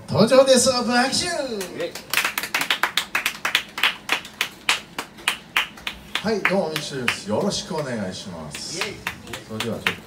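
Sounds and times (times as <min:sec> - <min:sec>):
people clapping: 0:01.5 - 0:10.0.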